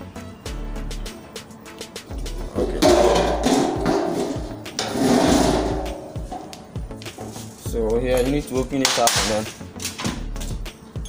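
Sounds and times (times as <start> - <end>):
scraping and rubbing handling noise: 2.2 - 9.9.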